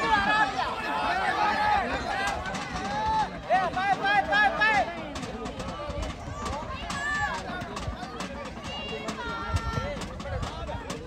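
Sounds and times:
crowd chatter: 0.0 - 11.0
voices shouting: 0.0 - 11.0.

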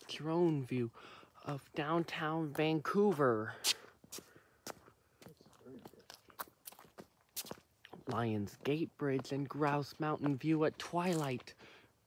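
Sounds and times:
faint footsteps: 0.0 - 12.0.

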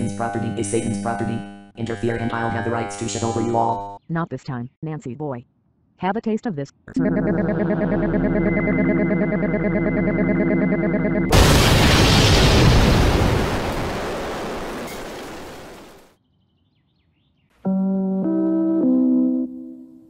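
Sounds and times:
loud explosion blast: 11.3 - 16.1.

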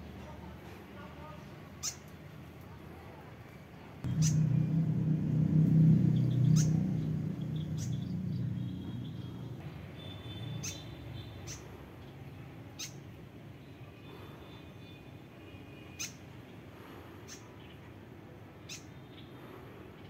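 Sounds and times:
steady low rumble: 4.0 - 9.6.

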